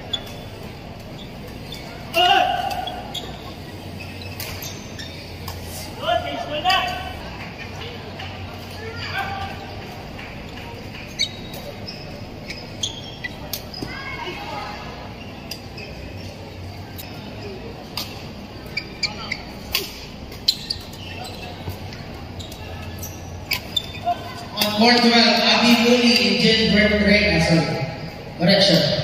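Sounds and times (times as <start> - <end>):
murmur of voices: 0.0 - 29.0
public-address announcement: 24.1 - 29.0.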